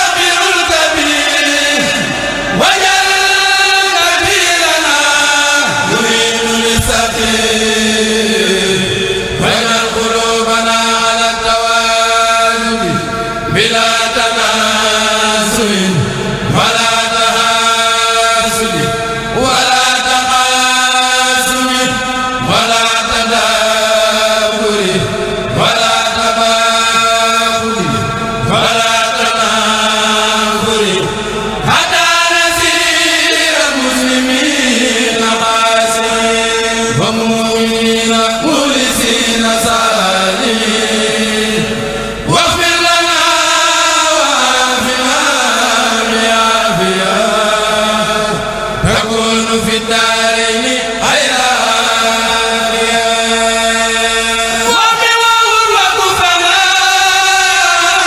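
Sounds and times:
men chanting in unison: 0:00.0 - 0:58.0.

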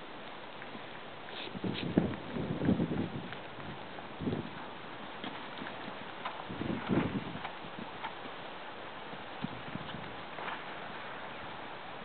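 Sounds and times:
horse hooves thudding on sand: 0:00.0 - 0:12.0.

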